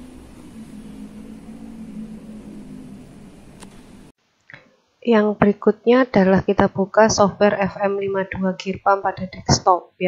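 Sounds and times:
steady machine hum: 0.0 - 4.2
low hiss: 0.0 - 7.2.

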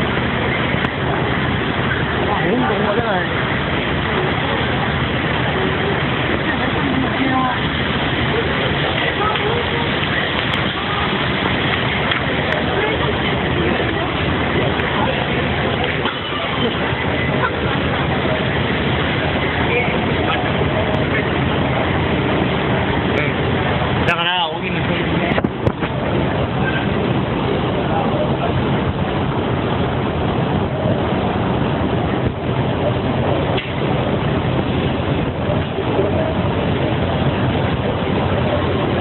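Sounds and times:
many voices talking: 0.0 - 39.0
traffic and engine noise: 0.0 - 39.0.

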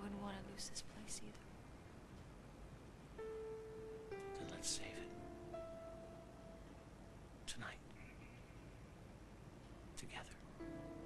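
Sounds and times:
breathy whisper: 7.5 - 8.6, 10.0 - 10.4.

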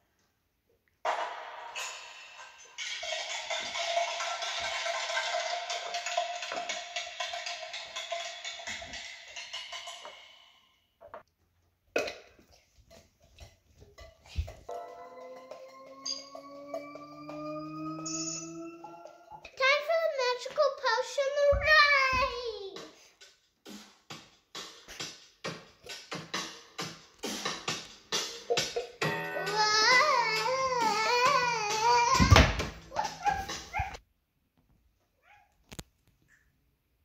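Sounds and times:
high shimmering tone: 14.7 - 19.5
sustained electronic tones rising: 14.7 - 19.5
child yipping and whimpering: 29.4 - 34.0.

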